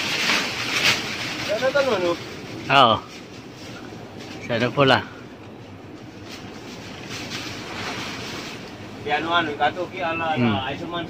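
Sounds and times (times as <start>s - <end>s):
leaves rustling in tree: 0.0s - 5.0s, 6.0s - 10.4s.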